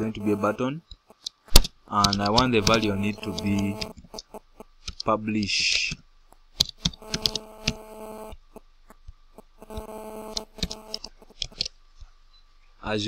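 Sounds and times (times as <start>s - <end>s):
steady hum: 0.0s - 13.0s
mouse clicks: 1.2s - 5.9s, 6.6s - 7.8s, 9.7s - 11.7s
keyboard keystrokes: 1.5s - 4.1s, 6.6s - 7.8s, 10.3s - 11.7s.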